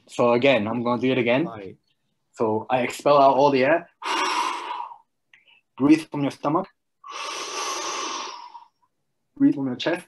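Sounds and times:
deep inhalation: 4.0 - 5.7, 7.0 - 8.9.

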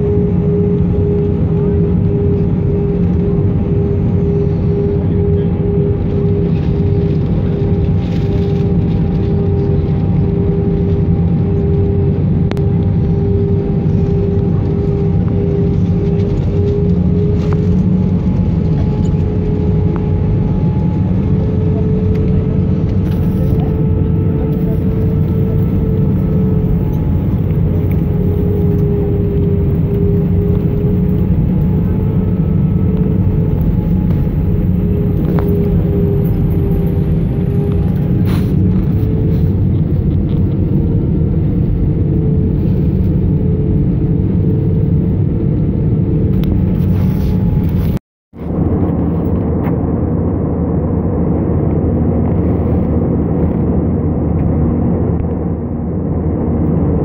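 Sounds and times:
airliner cabin rumble and rush: 0.0 - 57.0
wavering engine hum: 0.0 - 57.0.

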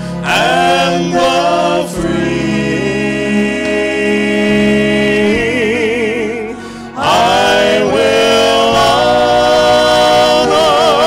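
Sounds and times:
vocal trio singing in harmony: 0.0 - 11.0.

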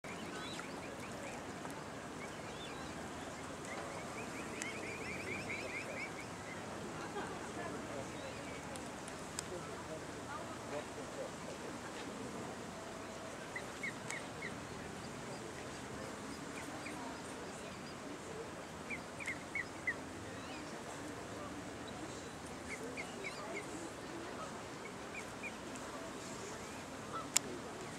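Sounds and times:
cygnets peeping: 0.0 - 6.7, 13.0 - 18.1, 18.8 - 21.2, 21.8 - 27.9
steady background hiss: 0.0 - 27.9.

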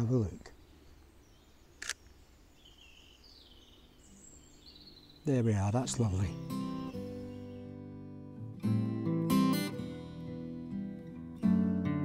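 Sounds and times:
birdsong chirps: 0.0 - 8.1
camera shutter click: 1.8 - 2.1.

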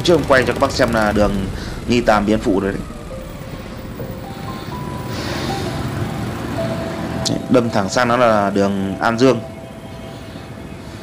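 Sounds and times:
held musical tones: 0.0 - 11.0
rumble of traffic: 0.0 - 11.0.

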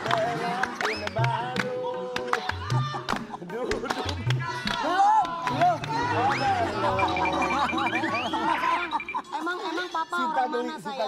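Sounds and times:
overlapping voices: 0.0 - 9.9
woman laughing loudly: 7.2 - 9.6.

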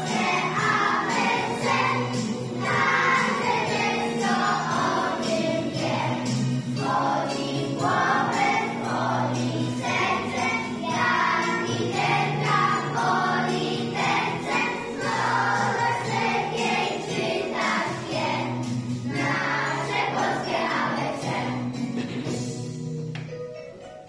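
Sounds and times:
children singing in unison: 0.0 - 21.7
instrumental backing music: 0.0 - 24.0
light jingling percussion: 0.0 - 24.0.

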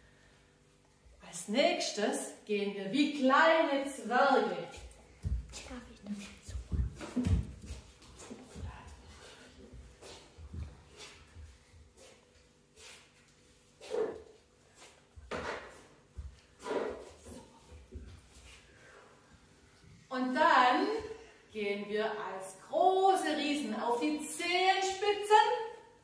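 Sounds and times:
footsteps on wooden floor: 4.7 - 12.2.

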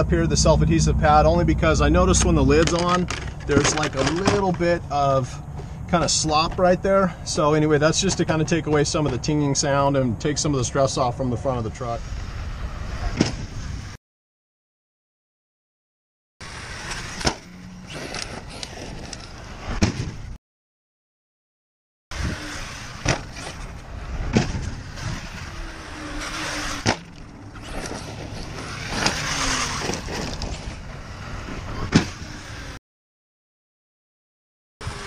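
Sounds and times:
rc truck tyres and drivetrain rushing: 0.0 - 14.0, 16.4 - 20.4, 22.1 - 32.8
truck landing thuds: 19.6 - 20.4, 22.8 - 25.4, 26.0 - 30.8, 31.7 - 32.4.

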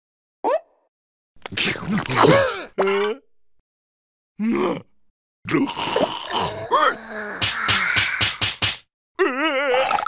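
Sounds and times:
cartoon vocal grunt: 2.1 - 3.3, 4.4 - 8.3, 9.2 - 10.0.

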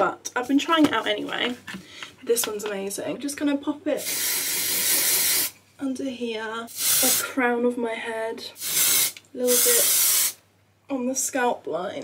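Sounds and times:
aerosol spray hiss: 4.0 - 5.6, 6.7 - 7.3, 8.6 - 10.4.

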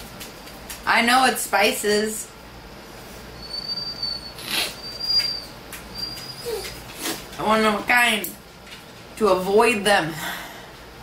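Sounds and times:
dog whining: 3.4 - 7.3.

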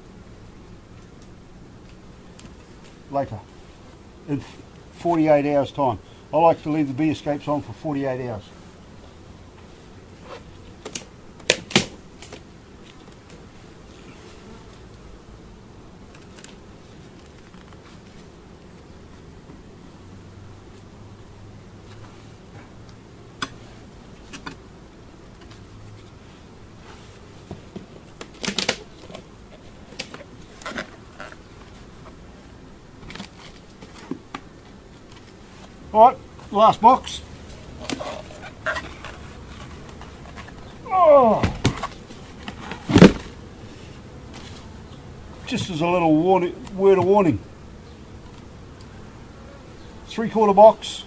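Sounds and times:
honey bees humming: 0.0 - 51.0
beehive boxes knocking and clacking: 9.5 - 13.5, 21.9 - 24.7, 26.8 - 32.3, 32.9 - 47.4.

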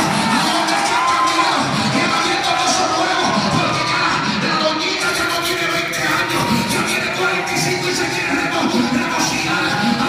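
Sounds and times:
congregation cheering and shouting: 0.0 - 10.0
loud music: 0.0 - 10.0.

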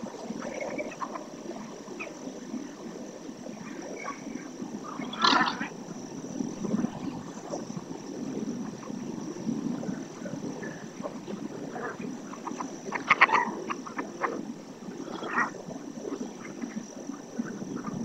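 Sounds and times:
murmur of animal calls: 0.3 - 2.3, 3.6 - 6.0, 8.6 - 18.0
sharp high animal calls: 4.9 - 5.7.

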